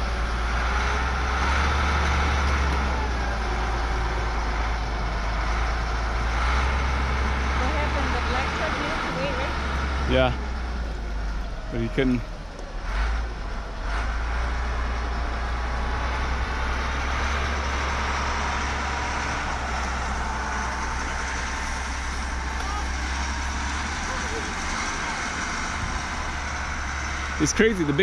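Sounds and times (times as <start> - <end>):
deep rumble: 0.0 - 28.0
outdoor background noise: 0.0 - 28.0.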